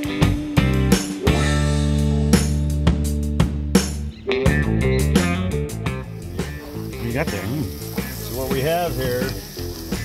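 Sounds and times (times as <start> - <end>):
background music with singing: 0.0 - 10.0
meat sizzling on a grill: 5.9 - 10.0.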